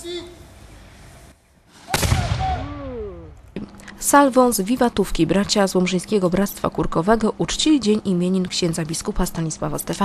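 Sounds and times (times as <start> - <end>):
gun blast with rumbling echo: 1.9 - 3.1.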